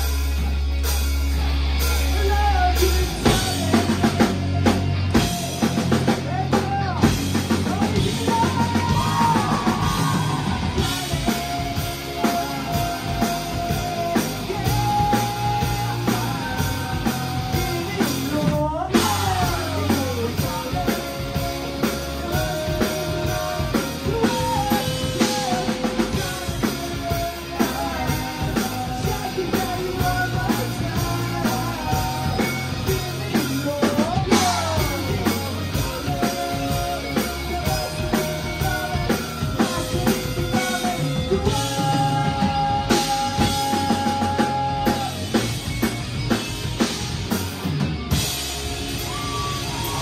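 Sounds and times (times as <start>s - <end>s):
live rock band playing: 0.0s - 50.0s.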